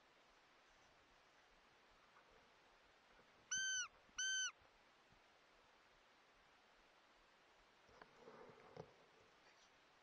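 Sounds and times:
short high-pitched calls: 3.5s - 4.6s.

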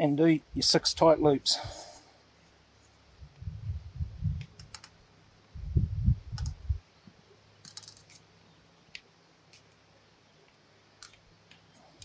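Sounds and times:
low rumble: 3.2s - 4.6s, 5.6s - 6.8s.

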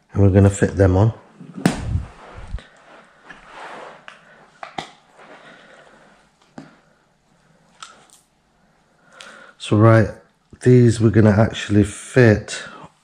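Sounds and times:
soft rustling: 1.3s - 8.2s.

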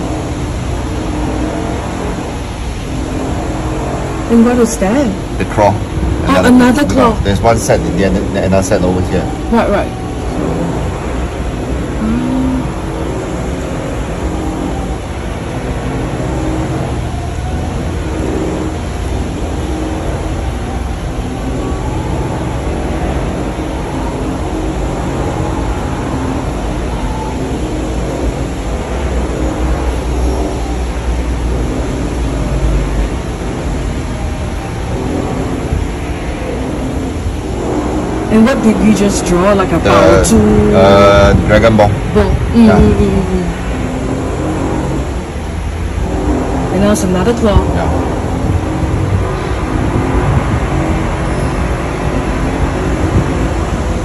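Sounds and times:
low rumbling noise: 0.0s - 54.0s.

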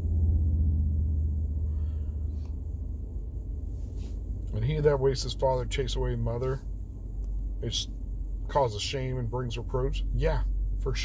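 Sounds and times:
vehicle cabin rumble: 0.0s - 11.0s.

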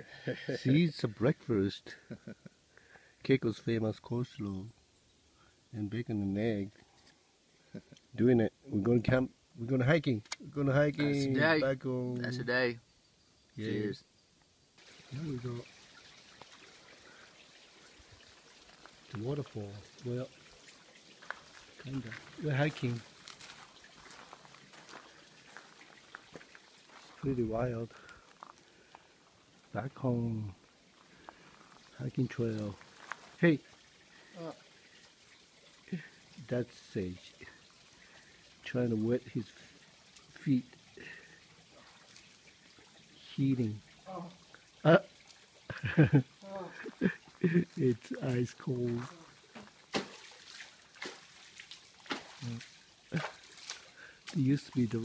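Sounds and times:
creek water trickling: 0.0s - 55.0s
faint hiss: 0.0s - 55.0s
light water splashes: 14.8s - 55.0s
footsteps on dirt trail: 21.2s - 27.2s, 32.8s - 33.4s, 48.9s - 50.3s.

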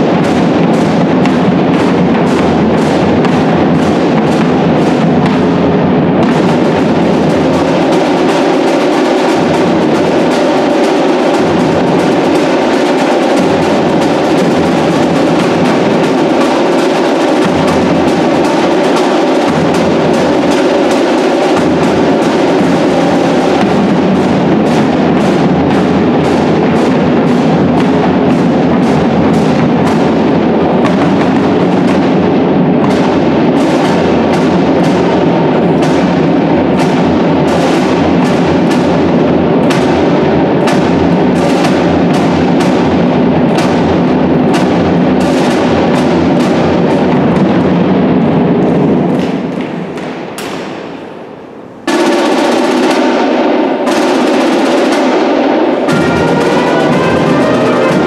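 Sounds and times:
marching brass band: 0.0s - 50.8s, 51.9s - 58.0s
snare and bass drums: 0.0s - 58.0s.

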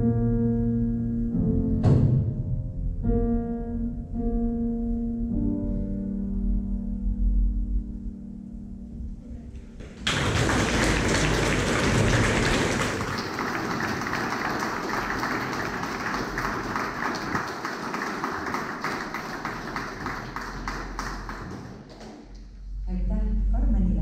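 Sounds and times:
piano chord: 0.0s - 17.3s
audience applause: 9.8s - 22.4s.

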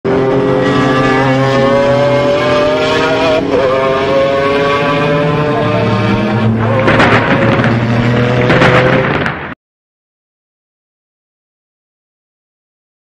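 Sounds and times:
sports car engine accelerating: 0.1s - 9.3s.

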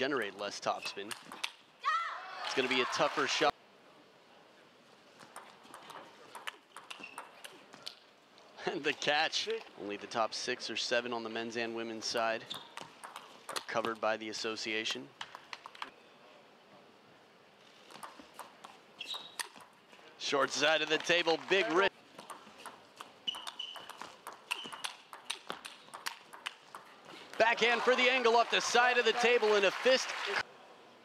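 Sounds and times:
table tennis ball clicking: 5.2s - 7.6s, 12.6s - 13.7s, 22.2s - 27.0s
brief high squeak: 19.0s - 19.4s.

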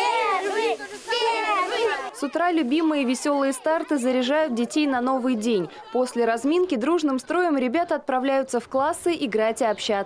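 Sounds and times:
young children shouting a chant: 0.0s - 4.5s.

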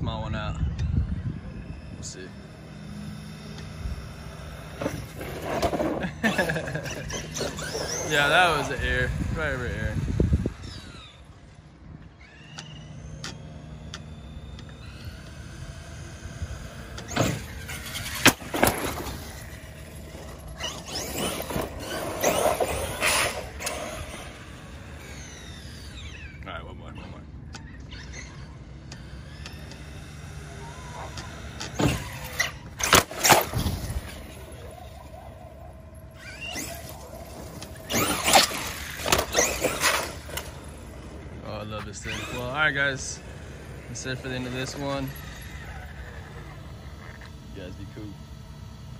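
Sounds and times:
toy truck motor whining: 0.5s - 48.9s.

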